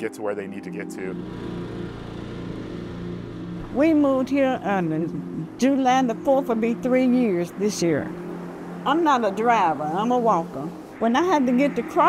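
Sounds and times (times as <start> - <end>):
motor running: 1.0 - 12.0
outdoor street noise: 1.0 - 12.0.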